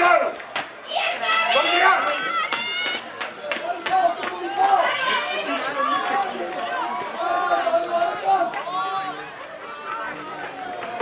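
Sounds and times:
people shouting and calling: 0:00.0 - 0:11.0.

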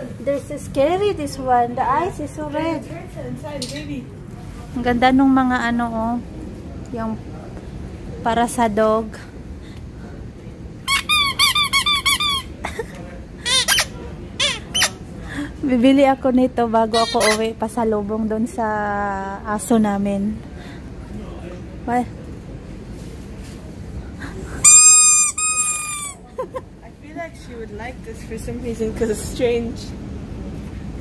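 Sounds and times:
squeaky dog toy squeaking: 0:10.9 - 0:12.6, 0:13.4 - 0:15.0, 0:16.9 - 0:17.5, 0:24.6 - 0:26.2.

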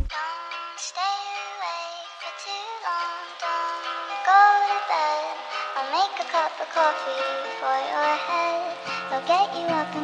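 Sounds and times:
woman singing softly: 0:00.1 - 0:10.0.

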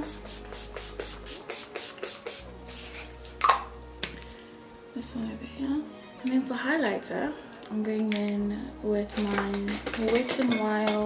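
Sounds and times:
spray bottle hisses: 0:00.0 - 0:03.6
soft background music: 0:00.0 - 0:11.0.

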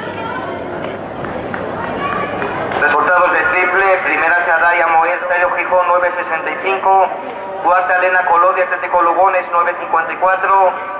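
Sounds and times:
crowd noise hum: 0:00.0 - 0:10.9
man speaking over public address: 0:02.7 - 0:10.9.

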